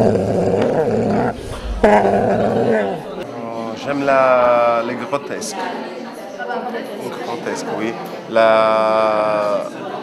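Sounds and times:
dog growling: 0.0s - 3.2s.

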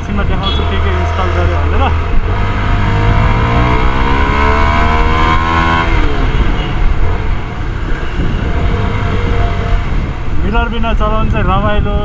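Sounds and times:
motorcycle engine accelerating: 0.0s - 10.4s
wind rumble on microphone: 1.9s - 12.0s.

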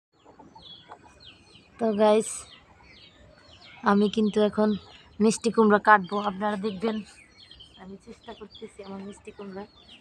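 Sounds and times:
birds chirping faintly: 0.2s - 10.0s.

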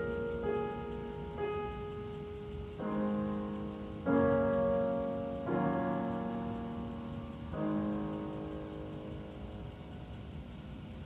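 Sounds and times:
low background hiss and rumble: 0.0s - 11.0s
piano chord: 0.0s - 11.0s.

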